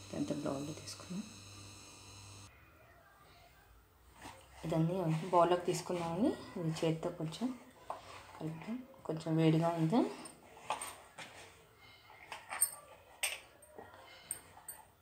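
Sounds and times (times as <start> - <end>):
person speaking: 0.0 - 1.4
light clicks and scrapes: 10.2 - 15.0.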